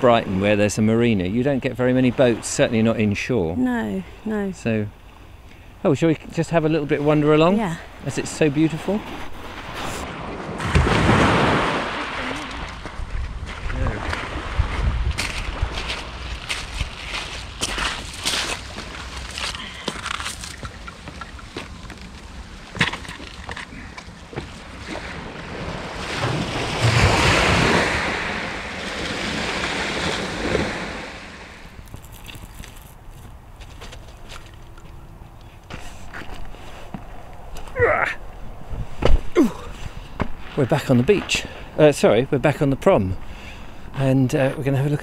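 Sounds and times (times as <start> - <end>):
waves washing on shore: 6.9 - 21.5, 23.6 - 32.6
wind on microphone: 9.2 - 17.1, 36.5 - 40.4
footsteps crunching on pebbles: 15.1 - 23.8, 31.7 - 35.0.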